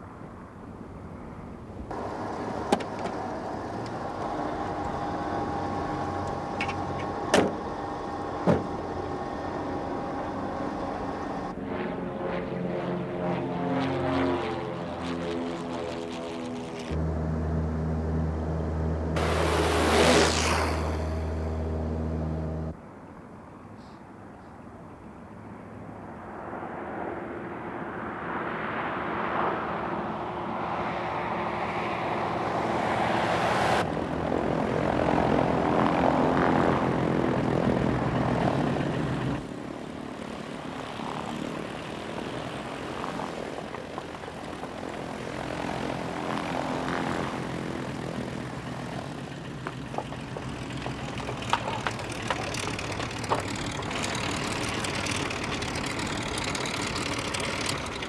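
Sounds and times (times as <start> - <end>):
twin-engine propeller aircraft: 0.7 - 22.8, 26.1 - 58.0.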